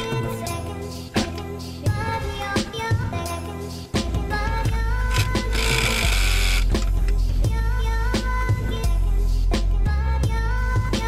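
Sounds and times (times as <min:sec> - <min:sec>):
pneumatic air ratchet: 0:05.1 - 0:07.0.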